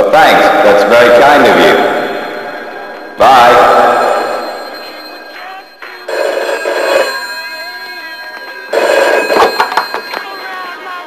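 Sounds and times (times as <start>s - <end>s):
telephone ringing: 1.4s - 11.0s.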